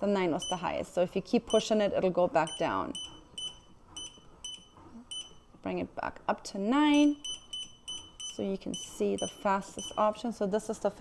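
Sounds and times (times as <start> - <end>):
short high control-panel beeps: 7.0 - 10.1.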